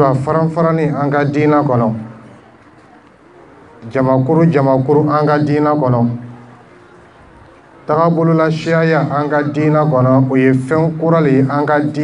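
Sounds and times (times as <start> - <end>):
man's amplified speech: 0.0 - 2.4, 3.8 - 6.6, 7.8 - 12.0.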